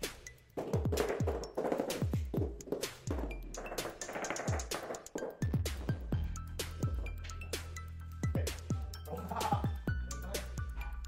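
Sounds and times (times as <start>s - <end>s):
electronic music with bass drum: 0.0s - 11.0s.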